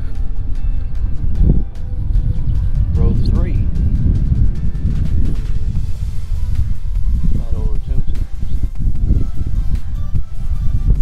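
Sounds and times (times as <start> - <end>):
faint background music: 0.0 - 11.0
wind buffeting microphone: 0.0 - 11.0.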